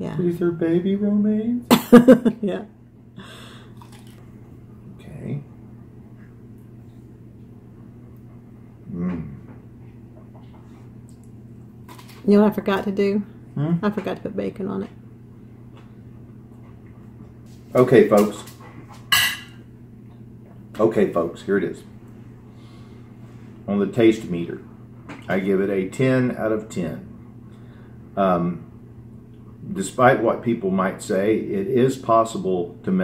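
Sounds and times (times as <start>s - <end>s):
faint low hum: 0.0s - 33.0s
quiet chewing: 3.6s - 4.6s, 6.1s - 12.2s
lettuce crunch of a bite: 3.7s - 4.2s.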